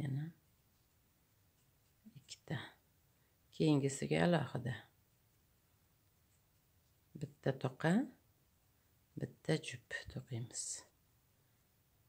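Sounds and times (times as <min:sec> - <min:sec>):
soft whisper-like vocal sound: 0:01.9 - 0:02.8.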